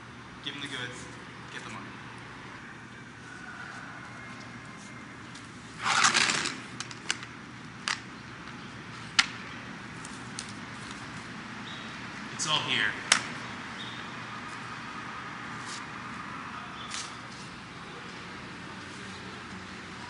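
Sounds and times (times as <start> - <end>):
steady background hum: 0.0 - 20.0
briefcase scraping on concrete: 5.8 - 7.2.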